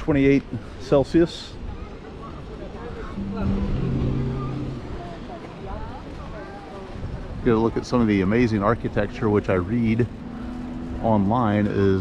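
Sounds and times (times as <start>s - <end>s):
faint distant voices: 0.0s - 12.0s
street noise: 0.0s - 12.0s
vehicle engine humming: 3.2s - 6.0s, 8.1s - 12.0s.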